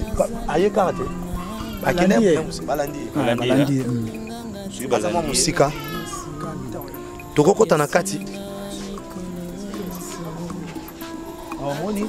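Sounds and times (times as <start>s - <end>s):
men talking: 0.0s - 12.0s
music of held tones: 0.0s - 12.0s.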